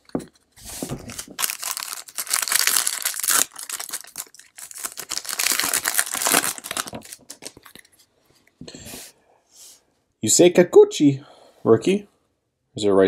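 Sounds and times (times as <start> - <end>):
cards rustling and clicking: 0.0 - 8.1
foil wrapper tearing and crinkling: 1.1 - 7.9.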